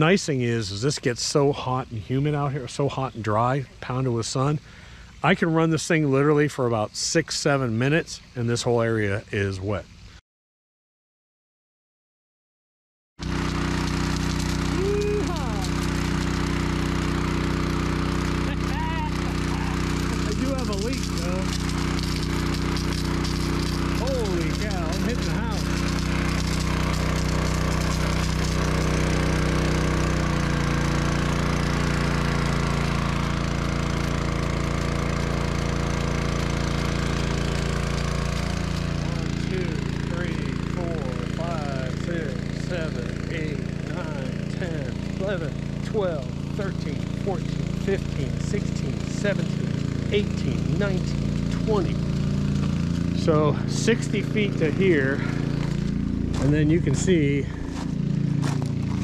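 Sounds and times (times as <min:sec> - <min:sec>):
engine-driven water pump running: 0:00.0 - 0:06.4, 0:13.2 - 0:59.0.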